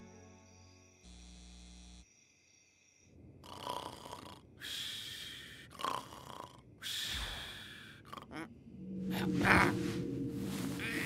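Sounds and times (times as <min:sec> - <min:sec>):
cartoon character snoring: 0:03.4 - 0:04.5, 0:05.7 - 0:08.5.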